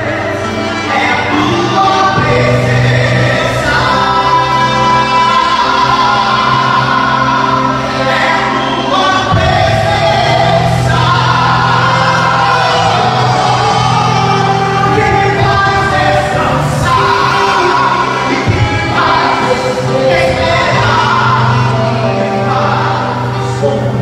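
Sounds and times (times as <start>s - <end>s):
band accompaniment: 0.0s - 24.0s
men singing gospel: 0.0s - 24.0s
sustained bass notes: 0.0s - 24.0s.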